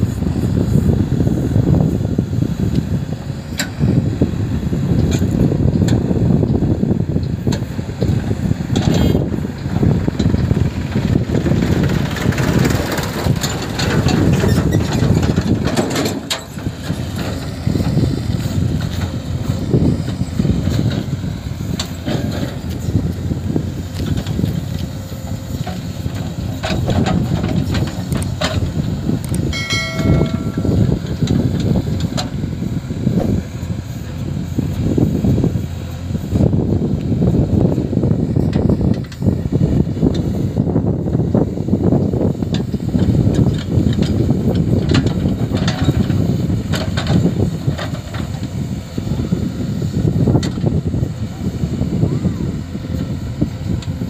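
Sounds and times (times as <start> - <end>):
diesel engine running under load: 0.0 - 54.0
backhoe arm digging soil: 7.3 - 40.5
short pitched tone: 29.5 - 31.0.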